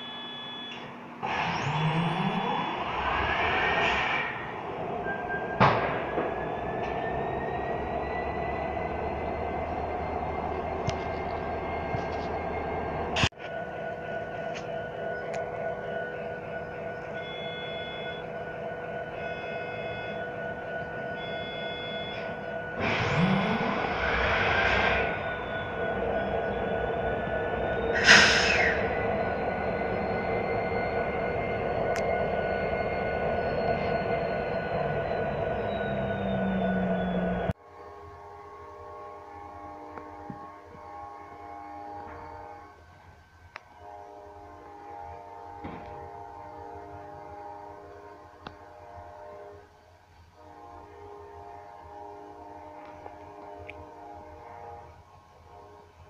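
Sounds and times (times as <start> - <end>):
diesel locomotive running: 0.0 - 56.0
loud bursts of noise: 22.8 - 30.4.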